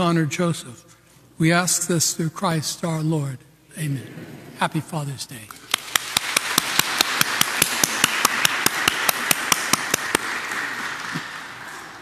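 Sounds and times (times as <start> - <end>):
close hand clapping: 5.7 - 12.0
congregation applauding: 5.7 - 12.0.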